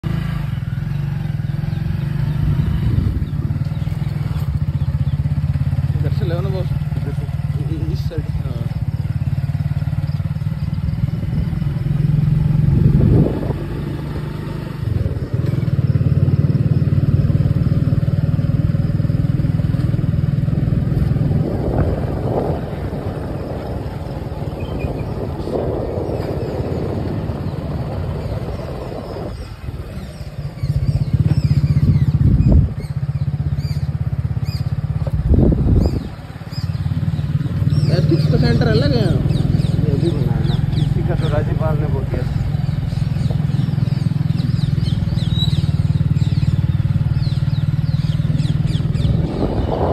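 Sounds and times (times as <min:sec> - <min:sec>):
motorcycle engine running: 0:00.0 - 0:49.9.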